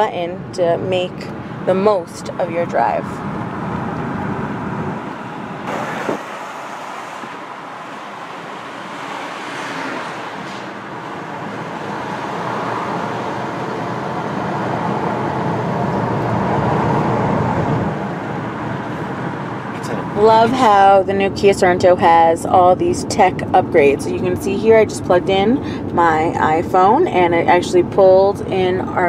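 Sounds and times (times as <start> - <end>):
road and tyre noise: 0.0 - 29.0.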